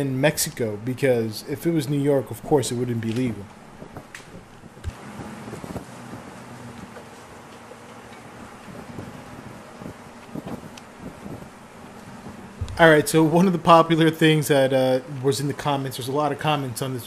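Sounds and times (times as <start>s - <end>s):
low engine hum: 2.2s - 13.4s
wind noise on microphone: 3.8s - 7.0s, 8.3s - 12.8s.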